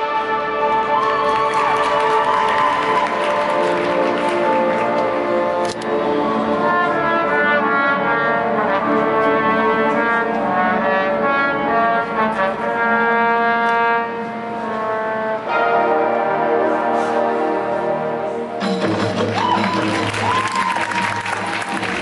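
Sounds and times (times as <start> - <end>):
marching band brass chords: 0.0 - 22.0.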